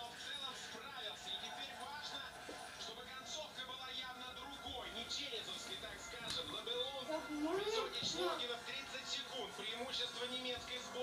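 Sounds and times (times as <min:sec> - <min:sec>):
television music: 0:00.0 - 0:11.0.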